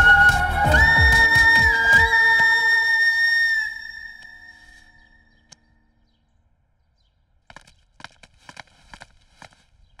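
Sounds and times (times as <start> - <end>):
film score high flute note: 0.0 - 5.3.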